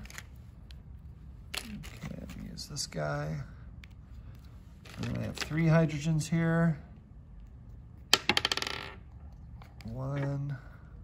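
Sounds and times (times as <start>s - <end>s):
wooden ball bouncing on table: 8.1s - 9.0s.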